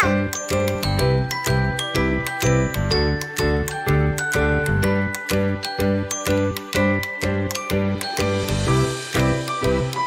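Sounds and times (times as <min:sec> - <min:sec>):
music with chiming melody: 0:00.0 - 0:10.0.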